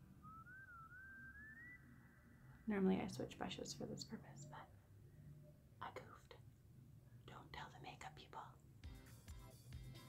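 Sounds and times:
soft whistling: 0.0s - 2.7s.

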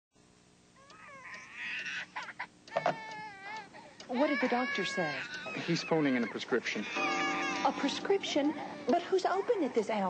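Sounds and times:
baby crying: 0.8s - 10.0s.

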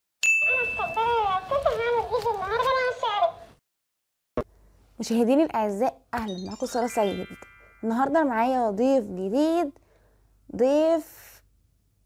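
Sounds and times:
short ding: 0.2s - 1.0s
toy squeaky high voice talking: 6.2s - 7.4s.

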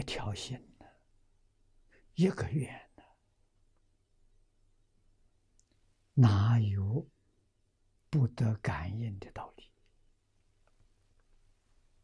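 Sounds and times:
elderly man speaking: 0.0s - 1.0s, 1.9s - 3.2s, 6.1s - 7.2s, 8.0s - 9.8s.

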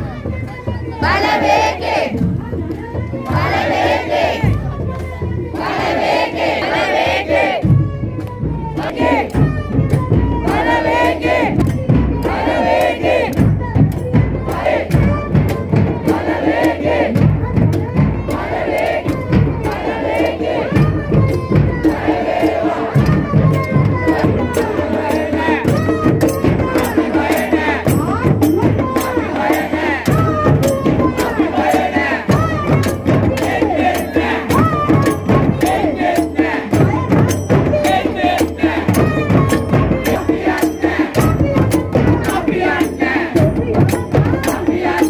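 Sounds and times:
bass drum: 0.0s - 45.0s
crowd shouting slogans: 0.0s - 45.0s
hand drums: 0.0s - 45.0s
small hand cymbals: 19.0s - 45.0s.

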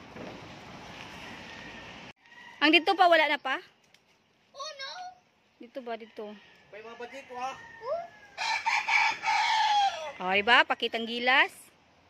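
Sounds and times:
rooster crowing: 1.1s - 3.0s, 6.0s - 10.7s.

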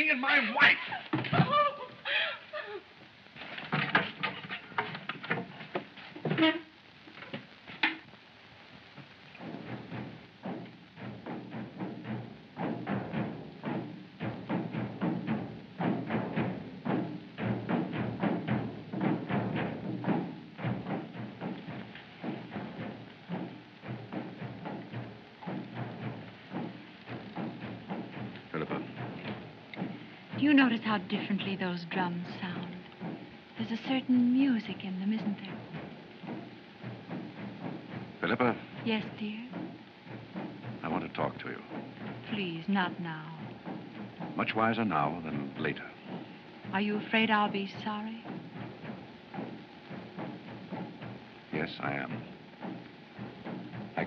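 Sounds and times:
drums beating fast rhythm: 0.0s - 54.0s
scattered knocks: 0.3s - 1.6s, 3.4s - 8.2s, 8.9s - 54.0s.

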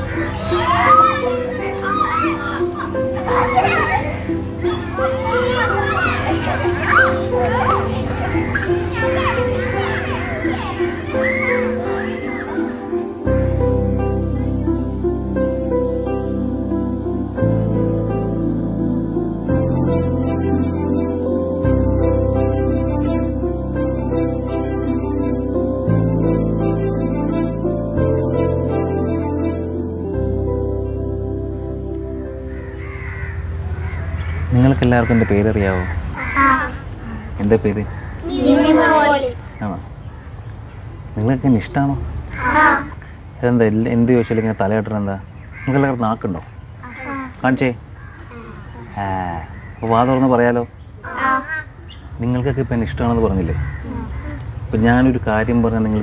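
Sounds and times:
children shouting at play: 0.0s - 13.3s, 32.4s - 40.4s, 42.2s - 43.2s, 46.8s - 50.2s, 51.0s - 51.9s, 53.4s - 54.8s
background music: 0.0s - 40.2s
crows cawing: 6.9s - 12.8s, 32.4s - 40.5s, 42.3s - 43.2s, 44.2s - 50.3s, 51.0s - 55.1s.

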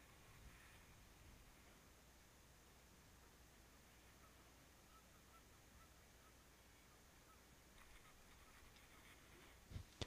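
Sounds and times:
distant waterfowl calls: 3.2s - 9.6s
faint ticks: 7.7s - 10.0s.

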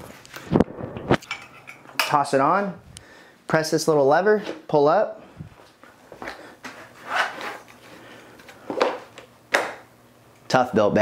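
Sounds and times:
tool pouch rustling: 6.2s - 9.1s.

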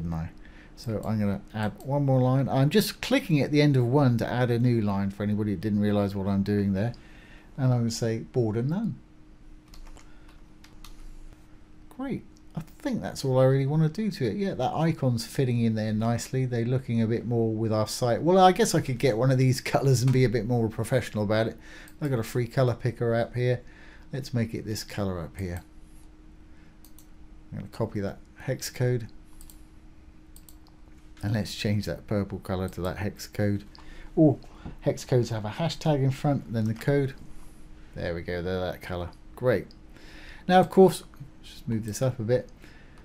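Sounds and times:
faint steady hum: 0.0s - 43.0s
computer mouse clicks: 9.6s - 11.0s, 26.8s - 27.1s, 29.4s - 29.6s, 30.4s - 30.8s
faint keyboard typing: 9.6s - 11.4s, 26.8s - 27.2s, 29.0s - 29.7s, 30.3s - 31.3s.

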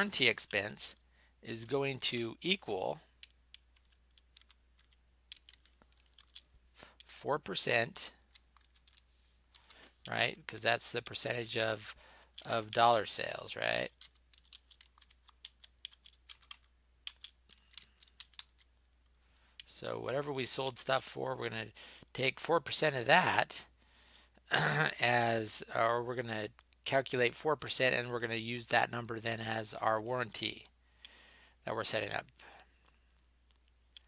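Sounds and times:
faint keyboard keystrokes: 3.0s - 7.1s, 8.2s - 10.2s, 12.3s - 19.7s.

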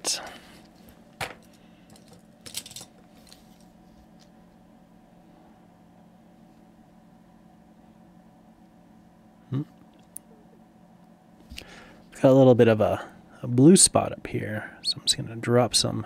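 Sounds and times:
faint steady hum: 0.0s - 16.0s.

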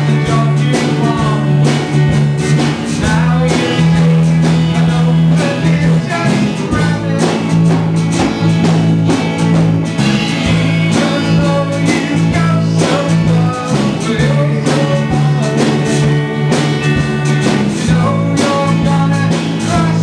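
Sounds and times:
person singing: 0.0s - 2.1s, 2.9s - 7.8s, 10.8s - 20.0s
guitars strummed: 0.0s - 20.0s.

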